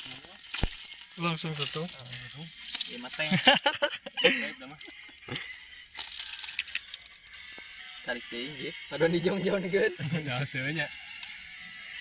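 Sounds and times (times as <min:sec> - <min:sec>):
people talking indistinctly: 0:00.0 - 0:05.8, 0:08.0 - 0:11.0
oil sizzling in a pan: 0:00.0 - 0:07.9.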